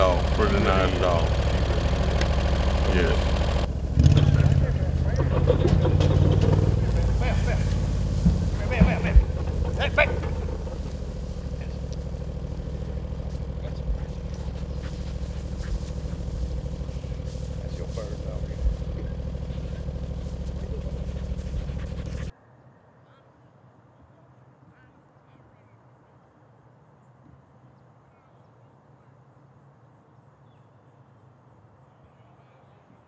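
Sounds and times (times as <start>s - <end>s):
vehicle engine running: 0.0s - 22.3s.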